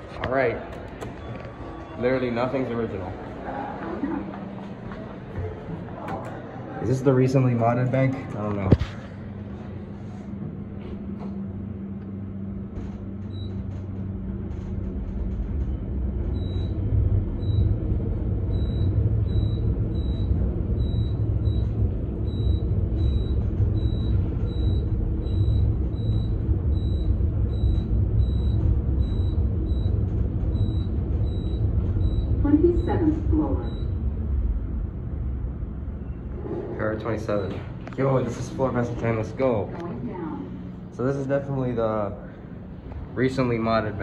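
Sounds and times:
elevator ride rumble: 0.0s - 44.0s.

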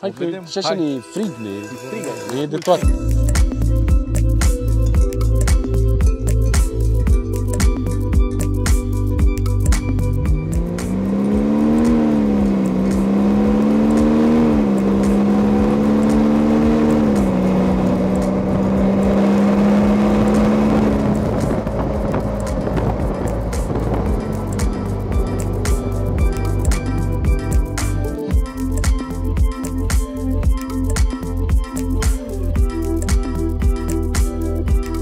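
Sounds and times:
background music with a beat: 0.0s - 35.0s
diesel engine accelerating: 3.0s - 35.0s.

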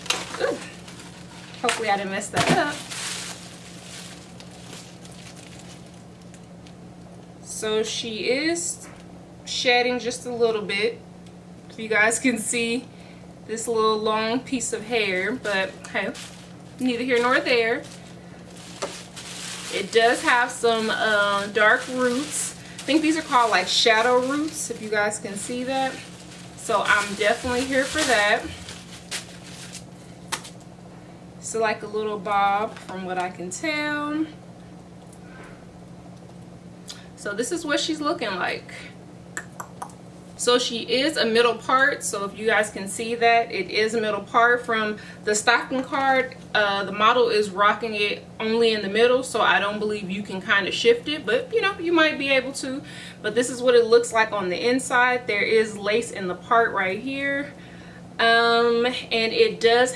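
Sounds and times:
wig fibres rustling: 0.0s - 6.7s, 14.6s - 30.6s
steady low hum: 0.0s - 59.9s.

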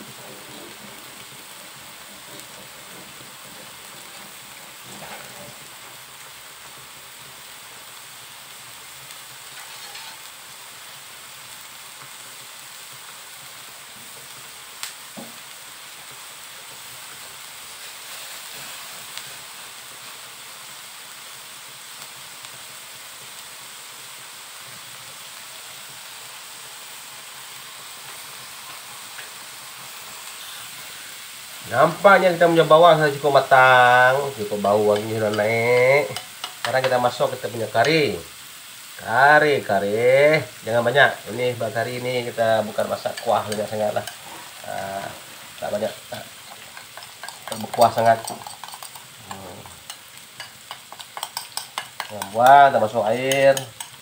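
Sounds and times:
paste sizzling in hot oil: 0.0s - 54.0s.

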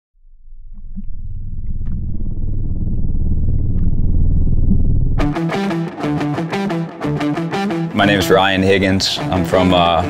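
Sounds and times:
deep low rumble: 0.2s - 5.4s.

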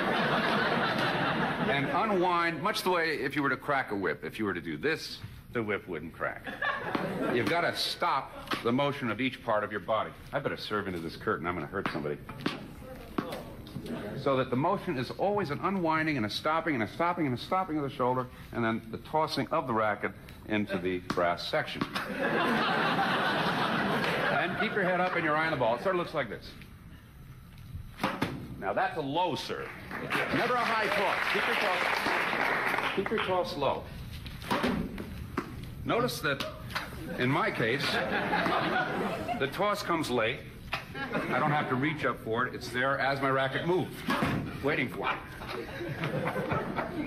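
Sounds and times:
tennis ball bouncing on hard floor: 11.8s - 13.5s, 28.0s - 28.6s, 34.4s - 35.6s.

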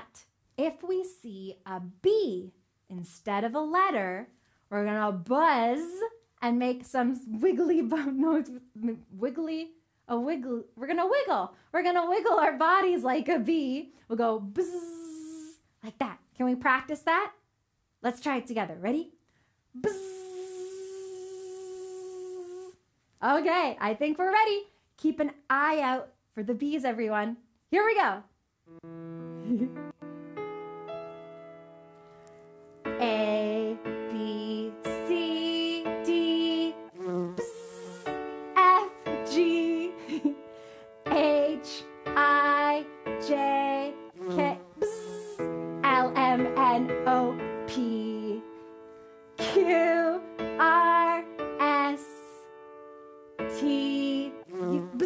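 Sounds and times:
woman imitating bee buzz: 14.6s - 15.6s, 19.8s - 22.8s, 29.2s - 30.0s, 35.2s - 40.2s, 43.4s - 46.8s, 53.6s - 55.0s
woman singing letters: 19.8s - 22.8s, 33.0s - 40.2s, 41.1s - 48.5s, 49.4s - 52.5s, 53.5s - 55.0s
music accompaniment: 28.6s - 55.0s.

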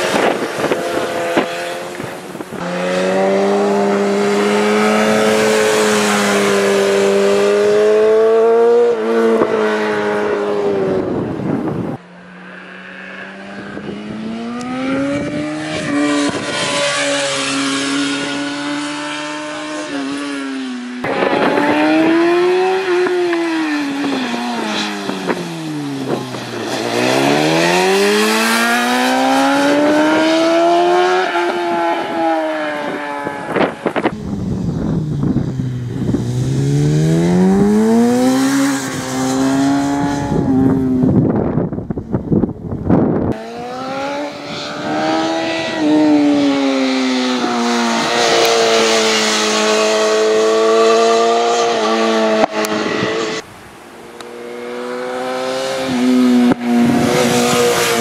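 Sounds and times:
racing motorcycle engine revving: 0.0s - 58.0s.

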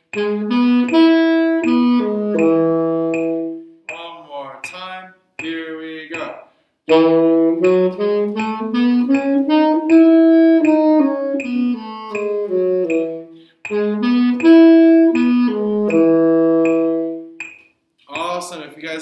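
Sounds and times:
tenor saxophone playing scales: 0.0s - 3.8s, 6.9s - 17.5s
man speaking: 3.9s - 6.6s, 18.0s - 19.0s.

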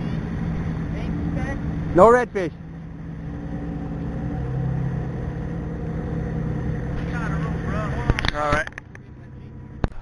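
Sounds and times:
boat motor droning: 0.0s - 10.0s.

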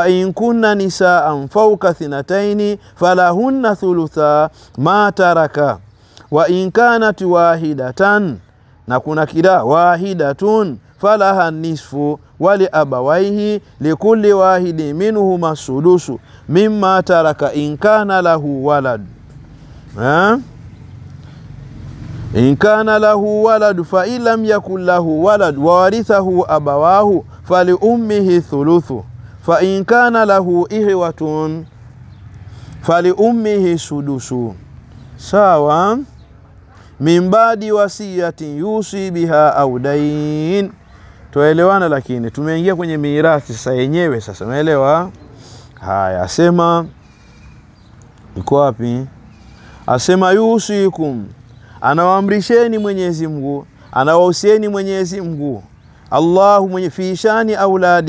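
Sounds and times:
man chanting: 0.0s - 19.2s, 19.9s - 20.5s, 22.2s - 31.7s, 32.8s - 36.2s, 37.0s - 45.2s, 48.3s - 58.0s.

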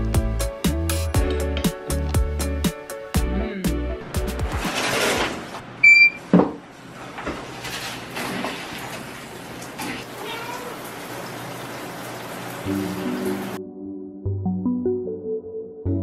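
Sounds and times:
shower water spray hissing: 9.8s - 13.6s.

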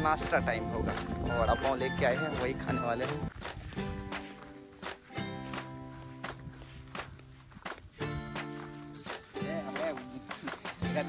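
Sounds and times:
sandal footsteps on grass: 0.0s - 11.0s.

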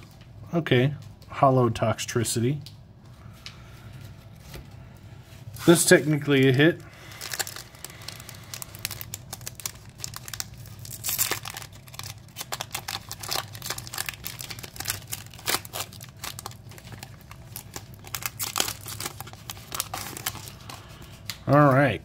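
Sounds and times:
foil pack tearing and crinkling: 6.8s - 21.4s.

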